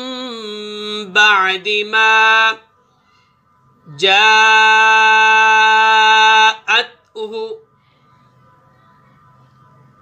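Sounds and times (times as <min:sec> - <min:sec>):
man chanting melodically: 0:00.0 - 0:02.8, 0:03.8 - 0:07.7.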